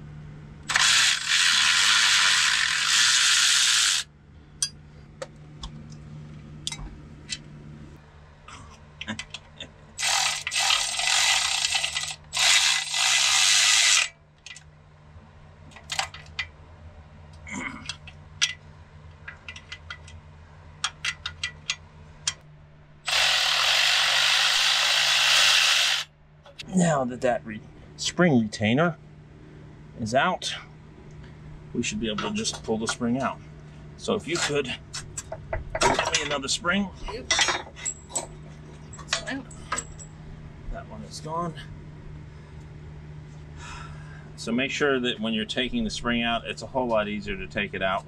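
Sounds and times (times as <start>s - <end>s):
cordless power tool running: 0.7s - 4.1s, 10.0s - 14.1s, 23.0s - 26.1s.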